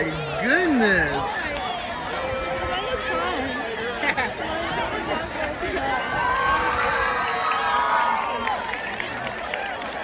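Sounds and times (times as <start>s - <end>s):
crowd chattering and cheering: 0.0s - 10.0s.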